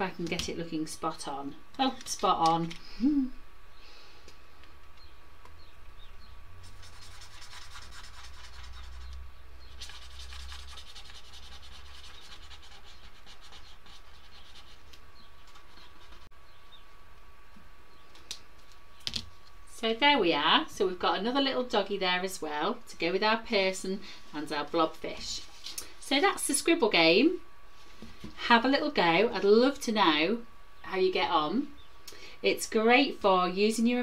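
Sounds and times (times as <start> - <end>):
felt-tip pen scratching on paper: 6.7 - 9.1, 9.8 - 14.9.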